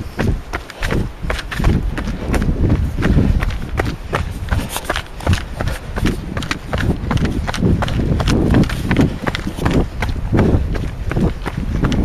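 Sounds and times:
running footsteps on dirt trail: 0.0s - 12.0s.

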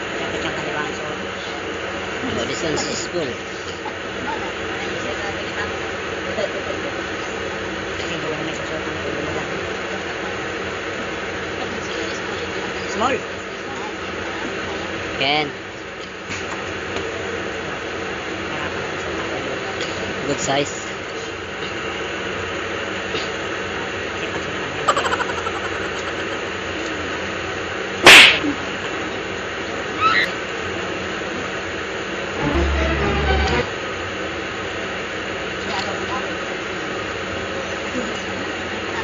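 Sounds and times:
muffled voices: 0.0s - 22.2s, 23.0s - 27.5s
low machinery hum: 0.0s - 39.0s
machinery rushing hum: 16.6s - 35.4s
short voice-like cry: 30.0s - 30.3s.

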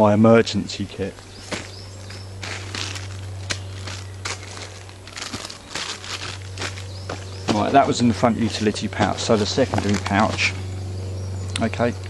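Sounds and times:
steady low hum: 0.0s - 12.0s
gear scraping: 1.1s - 10.8s
plastic rustling and crinkling: 1.4s - 10.5s.

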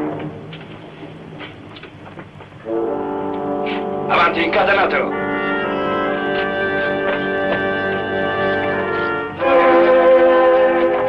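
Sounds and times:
brass chord: 2.6s - 11.0s
orchestral film score: 2.6s - 11.0s.

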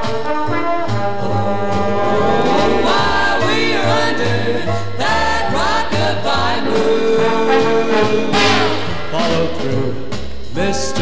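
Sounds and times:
jazz trombone ensemble: 0.0s - 10.1s
walking bass line: 1.0s - 10.6s.

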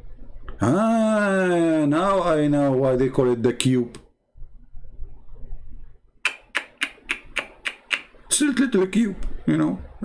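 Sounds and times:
faint low rumble: 0.0s - 3.5s, 4.1s - 6.2s.

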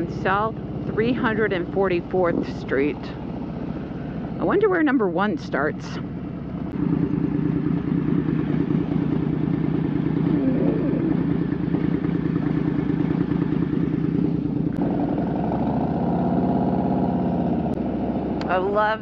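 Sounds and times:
motorcycle engine idling and accelerating: 0.0s - 19.0s.

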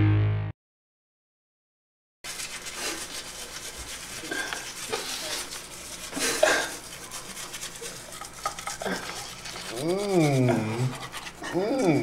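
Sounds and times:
toothbrushes scrubbing teeth: 2.3s - 12.0s.

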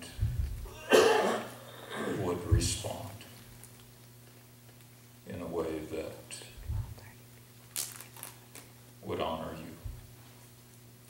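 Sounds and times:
sharp cough: 0.8s - 2.3s
speech: 2.1s - 3.3s, 5.3s - 6.9s, 9.0s - 9.9s.

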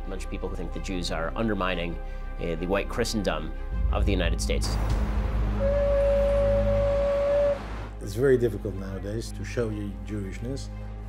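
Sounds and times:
low background music drone: 0.0s - 11.0s
shofar long steady note: 5.5s - 8.0s.

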